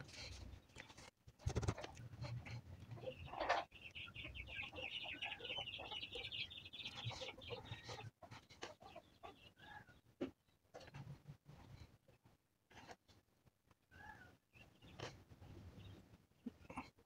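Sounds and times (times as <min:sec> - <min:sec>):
high rapid bird chirps: 0:01.4 - 0:01.8.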